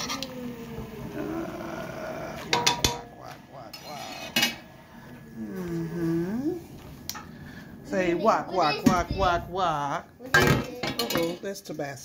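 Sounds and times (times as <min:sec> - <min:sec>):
person humming low falling pitch: 0:00.0 - 0:03.8, 0:04.9 - 0:06.8.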